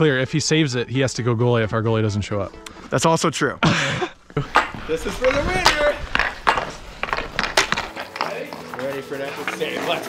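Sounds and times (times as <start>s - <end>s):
ice skates scraping: 4.4s - 10.0s
hockey stick clacking puck: 4.5s - 10.0s.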